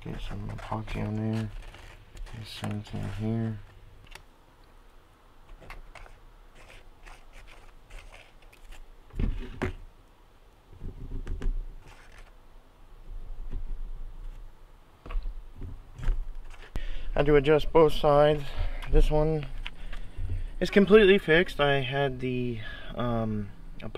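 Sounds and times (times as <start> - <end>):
light clicks and scrapes: 0.0 - 4.2, 5.5 - 9.8, 11.8 - 12.4.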